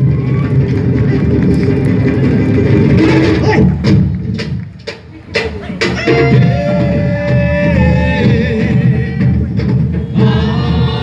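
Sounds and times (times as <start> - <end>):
percussion ensemble drumming: 0.0 - 11.0.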